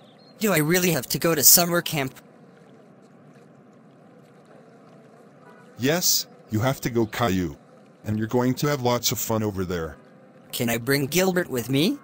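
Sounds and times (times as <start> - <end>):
outdoor background hiss: 0.0 - 12.0
person's voice: 0.4 - 2.2, 5.8 - 10.0, 10.6 - 12.0.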